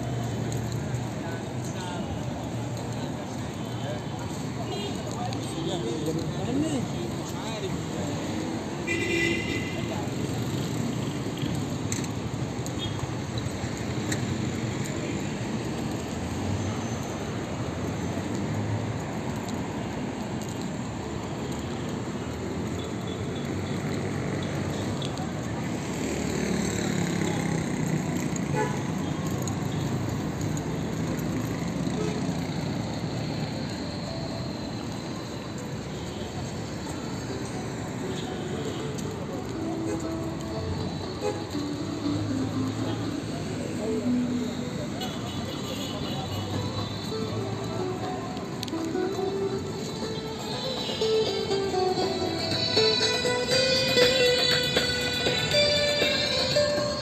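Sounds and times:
passers-by voices: 0.0s - 12.6s, 23.5s - 57.0s
passing traffic: 0.0s - 57.0s
music: 46.6s - 57.0s.

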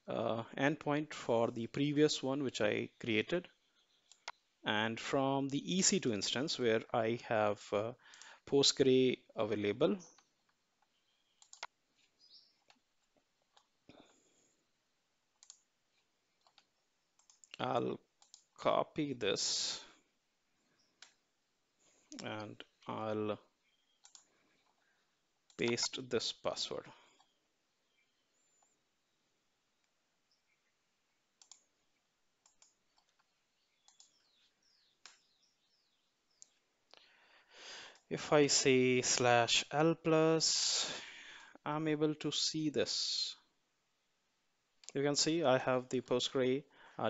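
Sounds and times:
computer mouse clicks: 4.0s - 4.4s, 11.4s - 12.1s, 15.4s - 17.6s, 18.2s - 18.5s, 24.0s - 24.8s, 31.4s - 31.7s, 32.4s - 34.2s.

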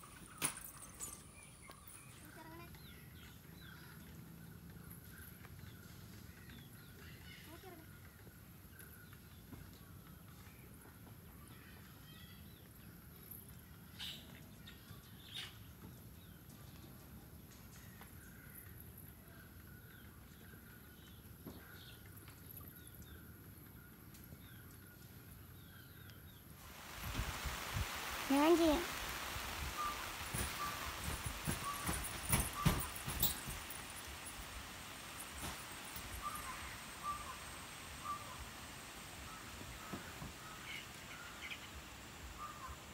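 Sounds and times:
faint high calls: 27.9s - 42.9s
faint bird chirps: 28.3s - 42.9s.

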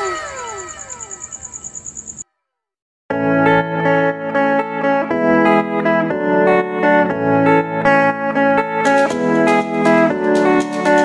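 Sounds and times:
fast high flutter: 0.0s - 2.2s
sliding whistle tones: 0.0s - 2.2s.

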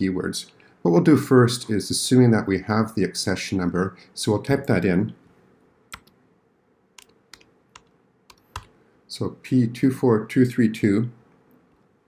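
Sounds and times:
computer keyboard key clicks: 5.9s - 6.2s, 7.0s - 8.7s.

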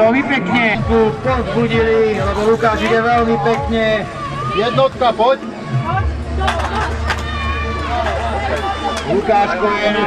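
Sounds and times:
people's voices: 0.0s - 10.0s.

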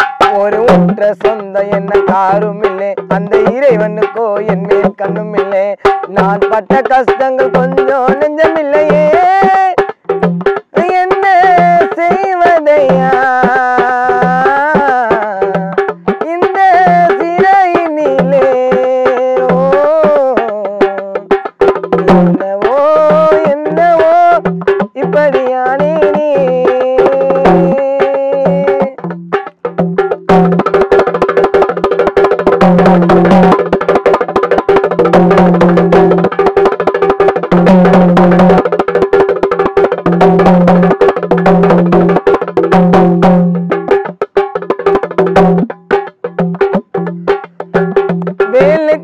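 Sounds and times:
man singing: 0.0s - 29.2s, 37.5s - 38.7s, 47.3s - 49.0s
hand drum strokes: 0.0s - 49.0s.

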